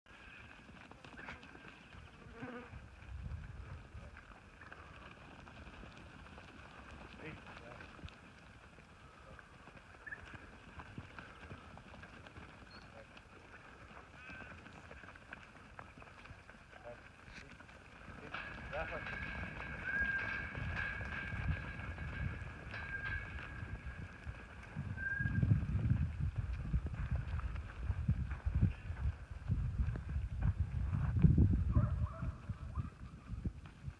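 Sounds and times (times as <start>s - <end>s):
sheep hooves on hard dirt: 0.1s - 33.9s.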